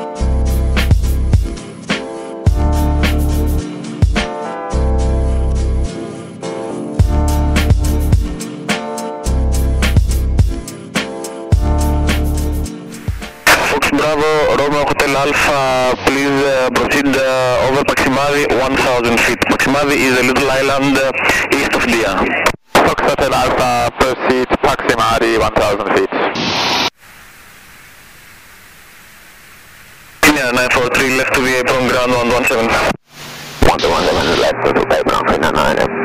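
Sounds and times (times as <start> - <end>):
radio hiss: 13.0 - 36.0
radio voices: 13.2 - 26.9, 30.2 - 36.0.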